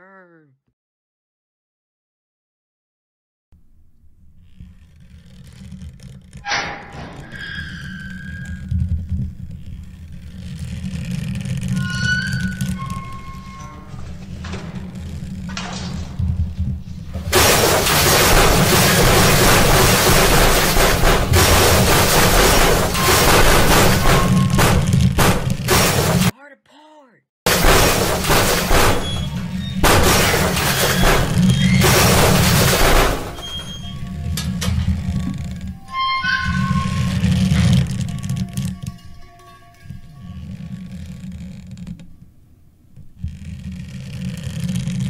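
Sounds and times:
high squealing tones: 6.3 - 15.3, 17.5 - 25.0, 27.9 - 41.6
rushing crash: 6.4 - 26.3, 27.5 - 40.5.

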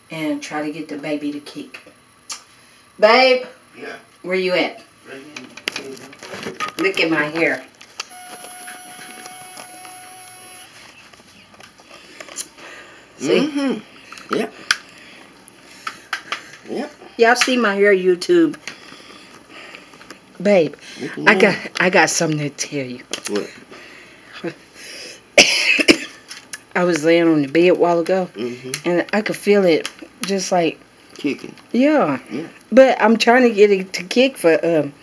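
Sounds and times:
faint clicks and handling noises: 5.3 - 12.6
high electronic beep: 8.1 - 10.7
person coughing: 25.4 - 26.2.

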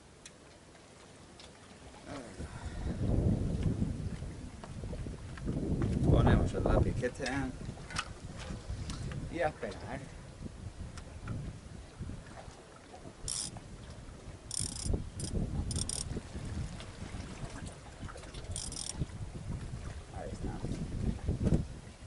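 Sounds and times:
wind buffeting microphone: 2.3 - 22.0
fishing reel rasps: 13.3 - 13.5, 14.5 - 16.1, 18.5 - 19.0.

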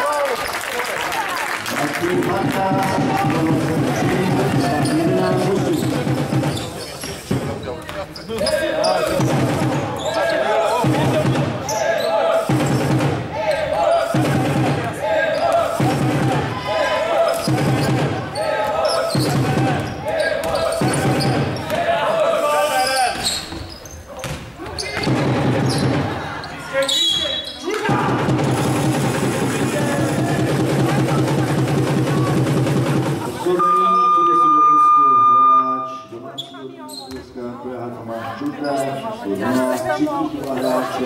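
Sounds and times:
spectators chanting: 8.3 - 23.1.

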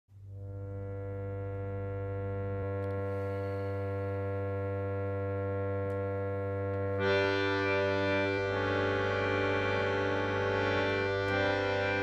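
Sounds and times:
harmonium drone: 0.3 - 12.0.

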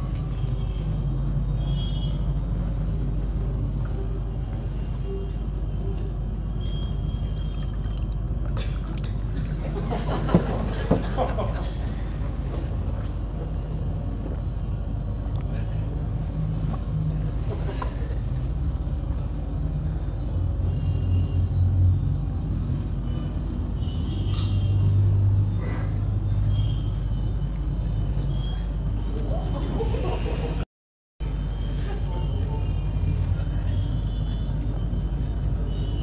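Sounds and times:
street traffic over loudspeakers: 0.0 - 30.6, 31.2 - 36.0.

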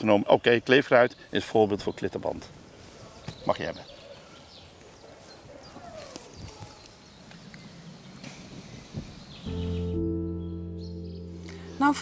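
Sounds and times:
scattered small outdoor sounds: 0.0 - 12.0
music with low sustained chords: 9.4 - 12.0.

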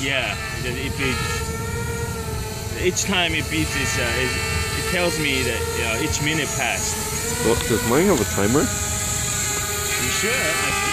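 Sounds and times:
drone propellers whining: 0.0 - 10.9.

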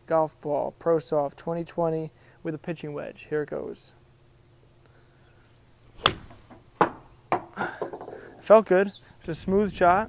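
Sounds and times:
sharp knock: 6.0 - 7.5
golf club striking ball: 6.0 - 8.1.

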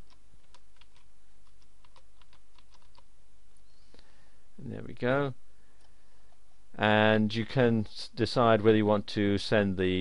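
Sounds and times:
keyboard typing: 0.0 - 3.1.

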